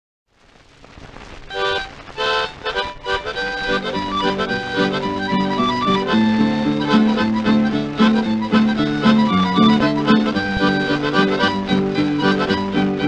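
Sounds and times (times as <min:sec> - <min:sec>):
record surface hiss: 0:00.3 - 0:13.0
harmonica melody: 0:01.5 - 0:13.0
string accompaniment: 0:01.6 - 0:13.0.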